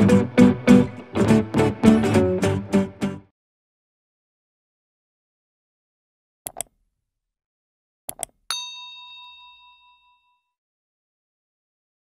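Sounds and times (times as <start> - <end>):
double mouse click: 6.5 - 6.8, 8.1 - 8.4
bright bell ding: 8.5 - 10.6.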